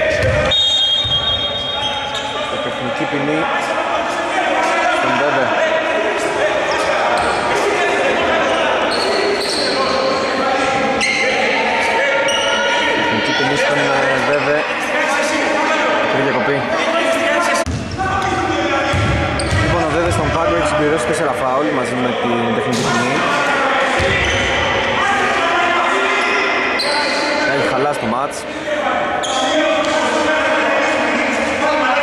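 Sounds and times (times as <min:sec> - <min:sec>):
players talking: 0:00.0 - 0:32.0
basketball bouncing on court: 0:00.1 - 0:01.4, 0:17.7 - 0:20.4.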